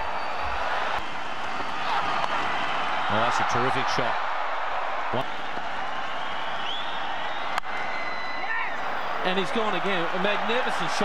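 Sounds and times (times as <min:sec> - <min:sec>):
stadium crowd cheering and applauding: 0:00.0 - 0:11.0.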